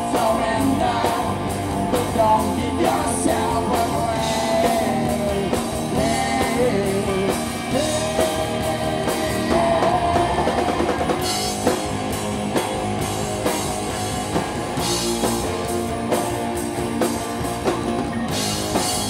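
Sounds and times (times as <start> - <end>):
electric guitar lead bending notes: 0.0 - 19.0
rock band playing: 0.0 - 19.0.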